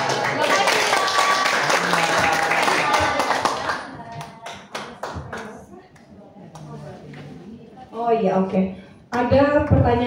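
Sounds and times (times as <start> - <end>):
audience applause: 0.0 - 5.4.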